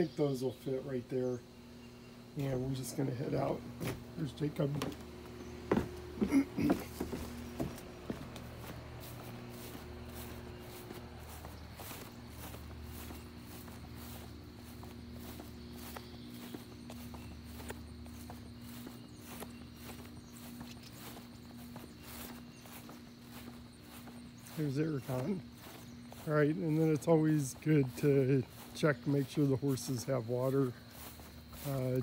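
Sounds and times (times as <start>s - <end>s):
footsteps on grass: 0.0s - 32.0s
steady low hum: 0.0s - 32.0s.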